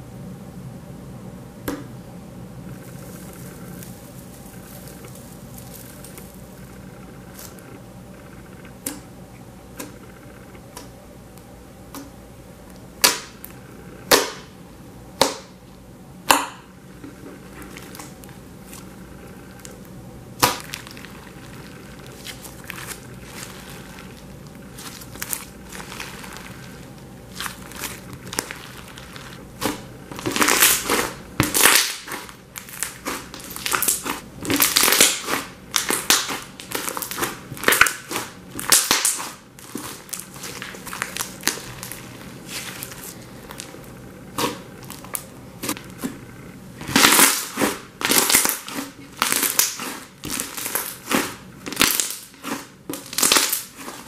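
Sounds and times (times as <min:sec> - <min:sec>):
slime folded by hand: 0:02.8 - 0:06.7, 0:20.4 - 0:46.2, 0:46.8 - 0:54.0
air popping from slime: 0:20.4 - 0:43.7.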